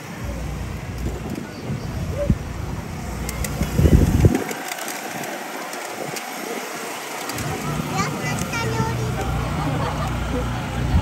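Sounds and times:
crowd walking and talking: 0:00.0 - 0:11.0.

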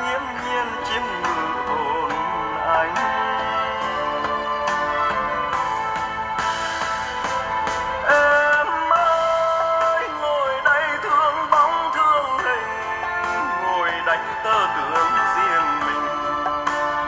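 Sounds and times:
person singing wavering melody: 0:00.0 - 0:05.8, 0:08.0 - 0:17.0
ballad through bare speakers: 0:00.0 - 0:17.0.

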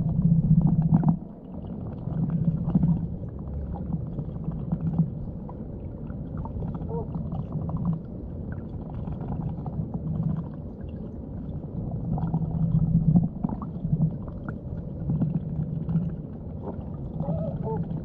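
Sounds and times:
small clicks and gurgles: 0:00.0 - 0:18.0
underwater moving water rumble: 0:00.0 - 0:18.0.

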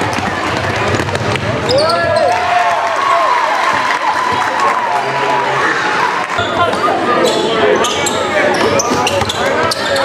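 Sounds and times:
crowd noise in gym: 0:00.0 - 0:10.0.

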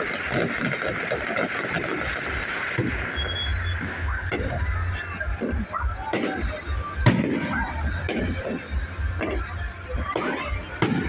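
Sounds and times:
fireworks bangs: 0:00.0 - 0:11.0.

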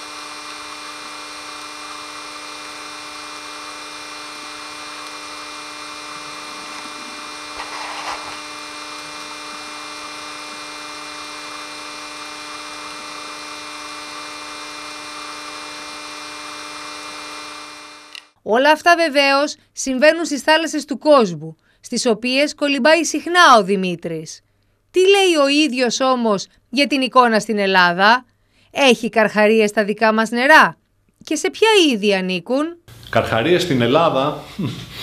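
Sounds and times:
underwater mechanical hum: 0:00.0 - 0:18.4
brief noisy burst: 0:06.6 - 0:08.6.

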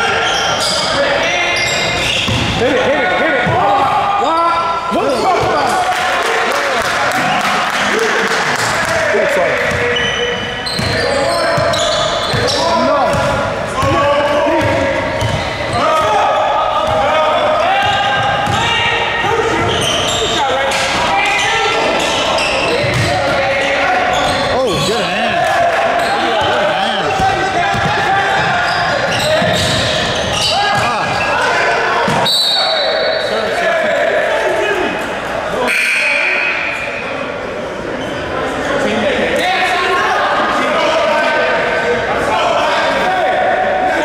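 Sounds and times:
indistinct voices: 0:00.0 - 0:44.0
basketball bouncing on gym floor: 0:02.2 - 0:02.6, 0:11.6 - 0:14.0, 0:14.6 - 0:15.5, 0:22.8 - 0:23.2, 0:27.1 - 0:28.5.

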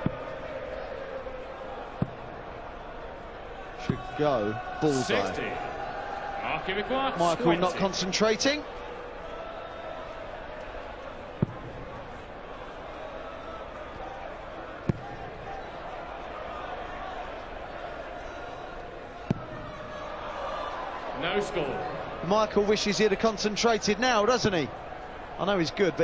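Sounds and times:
murmur of crowd: 0:00.0 - 0:26.0.

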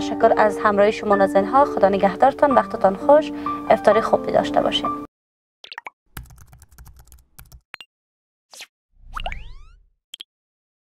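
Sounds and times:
keyboard typing clicks: 0:06.2 - 0:07.6.

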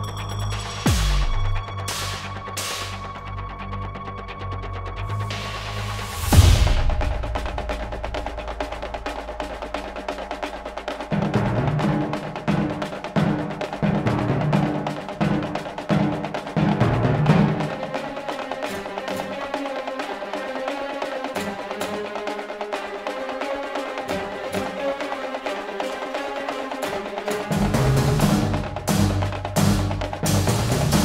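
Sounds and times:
ticking wood-block percussion: 0:00.0 - 0:04.0, 0:06.2 - 0:31.0.

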